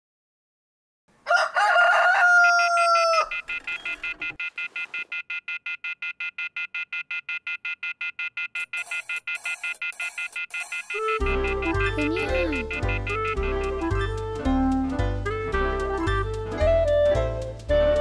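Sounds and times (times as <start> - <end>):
rooster crowing: 1.2 - 3.5
alarm ringing in rapid pulses: 2.4 - 13.7.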